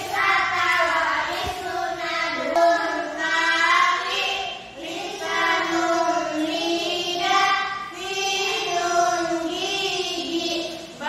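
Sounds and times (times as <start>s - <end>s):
girls singing unaccompanied: 0.0s - 11.0s.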